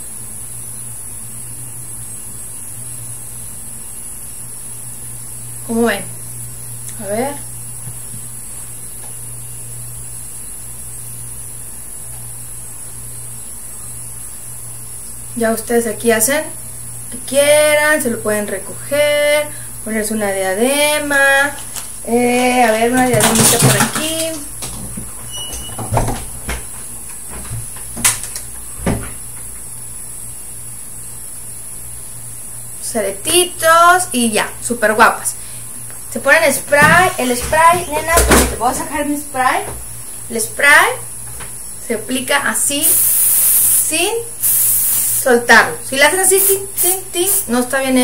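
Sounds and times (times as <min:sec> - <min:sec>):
low electrical hum: 0:00.0 - 0:48.0
faint high hiss: 0:42.7 - 0:45.5.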